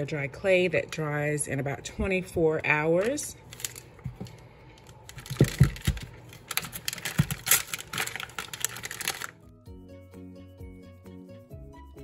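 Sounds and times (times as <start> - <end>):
background music: 8.0 - 12.0.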